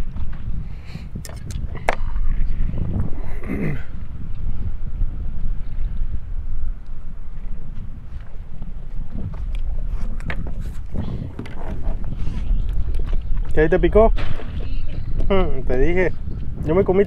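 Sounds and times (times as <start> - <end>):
wind buffeting microphone: 0.0 - 17.0
small boat rumbling: 7.0 - 16.6.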